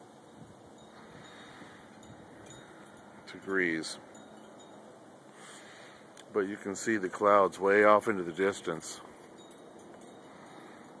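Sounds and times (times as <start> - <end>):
faint high chime tones: 0.7 - 5.0, 8.2 - 11.0.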